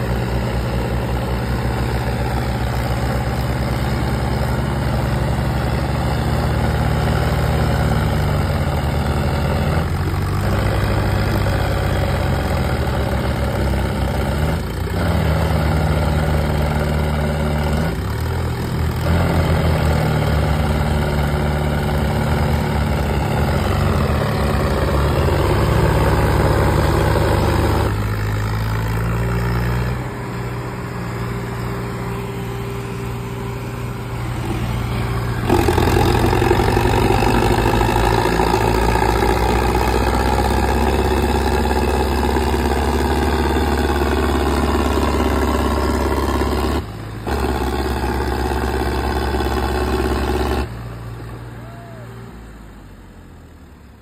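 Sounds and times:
diesel tractor engines at full throttle: 0.0 - 54.0.

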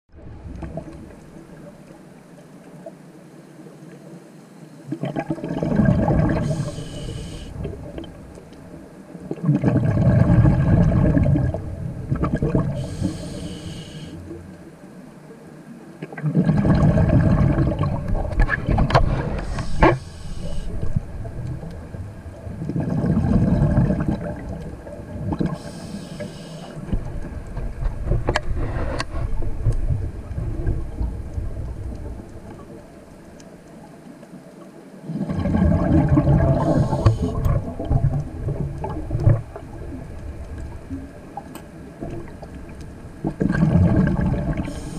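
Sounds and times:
underwater exhalation bubbles: 4.9 - 6.8, 9.2 - 13.0, 16.0 - 20.1, 20.8 - 25.7, 35.1 - 40.1, 43.2 - 44.9
regulator inhalation hiss: 6.4 - 7.6, 12.8 - 14.4, 19.4 - 20.9, 25.5 - 26.9, 36.6 - 37.4, 44.6 - 44.9.

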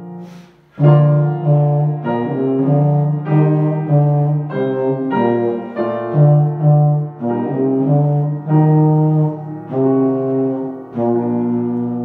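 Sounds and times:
piano: 0.0 - 12.0.

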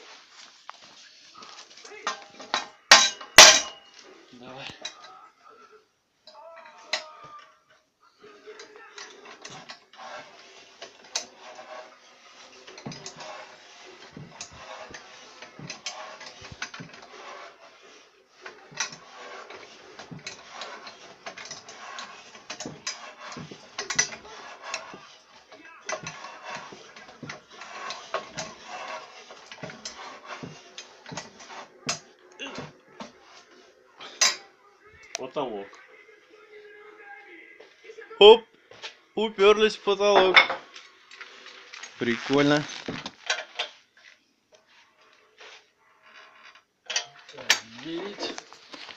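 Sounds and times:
metallic clicks and creaks: 18.4 - 25.1, 46.0 - 48.8.

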